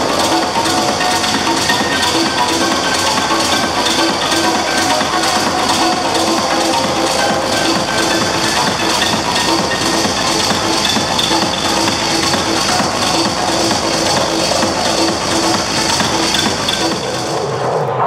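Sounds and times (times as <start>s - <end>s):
techno music: 0.0s - 18.0s.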